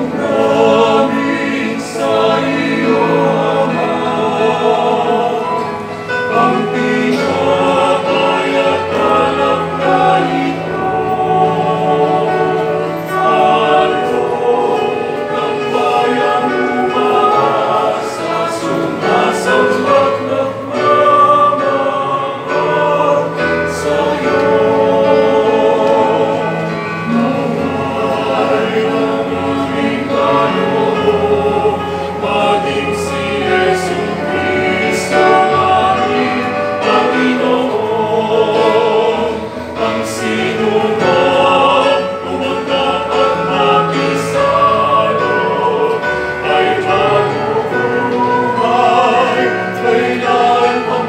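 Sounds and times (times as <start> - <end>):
choir singing a hymn: 0.0 - 51.0
digital piano: 0.0 - 51.0.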